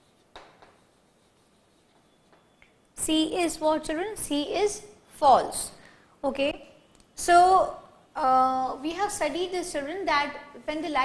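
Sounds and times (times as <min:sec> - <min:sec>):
chalk ticking on blackboard: 0:00.0 - 0:02.6.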